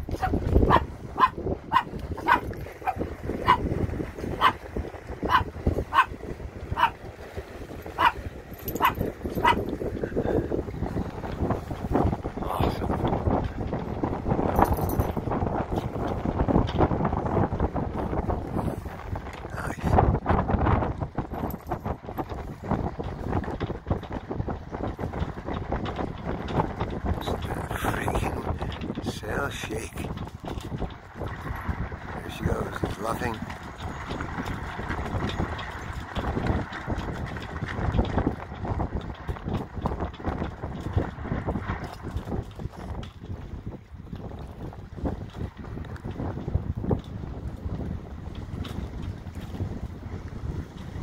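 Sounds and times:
water: 0:00.0 - 0:51.0
wind on microphone: 0:00.0 - 0:51.0
small dog yapping: 0:00.2 - 0:03.6, 0:05.3 - 0:06.1, 0:06.8 - 0:07.0, 0:08.0 - 0:08.2, 0:08.8 - 0:09.6.

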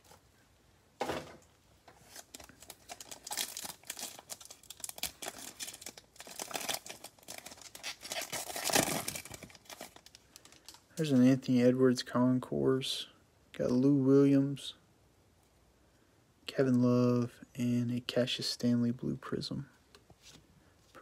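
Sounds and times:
foil wrapper tearing and crinkling: 0:02.1 - 0:10.8.

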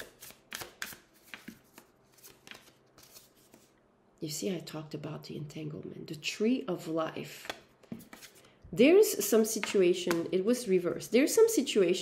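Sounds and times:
cards being shuffled by hand: 0:00.0 - 0:03.8.

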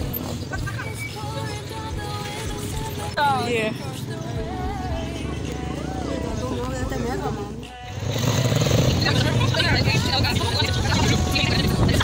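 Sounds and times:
people's voices: 0:00.0 - 0:12.0
street traffic: 0:00.0 - 0:12.0.

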